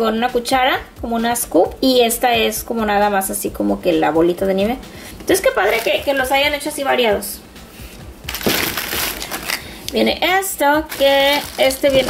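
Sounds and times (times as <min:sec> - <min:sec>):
plastic bag crinkling: 0:05.5 - 0:06.3, 0:08.3 - 0:09.9, 0:10.8 - 0:12.0.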